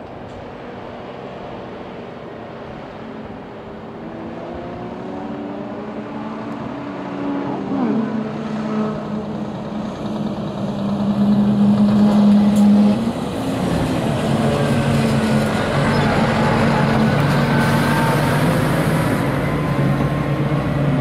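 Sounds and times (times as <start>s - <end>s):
diesel truck engines passing: 0.0s - 21.0s.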